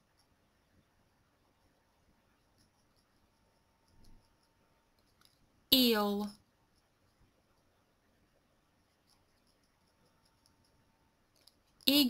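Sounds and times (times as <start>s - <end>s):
faint clicks: 2.4s - 5.5s, 8.8s - 11.9s.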